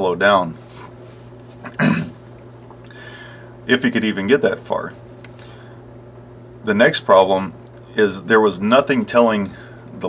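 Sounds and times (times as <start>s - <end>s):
man clearing his throat: 1.6s - 2.2s.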